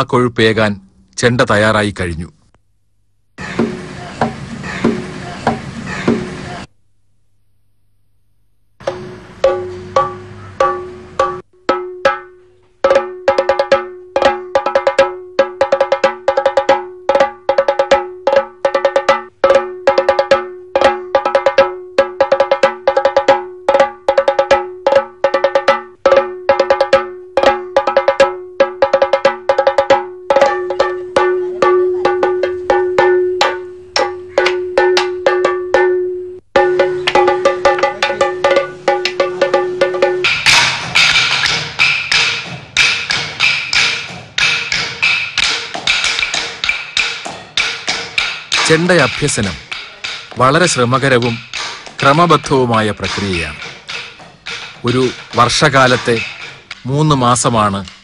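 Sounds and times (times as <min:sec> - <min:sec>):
drumstick tapping stone: 0:08.8 - 0:35.9, 0:36.6 - 0:58.0
rapid drum stick strokes: 0:36.6 - 0:58.0.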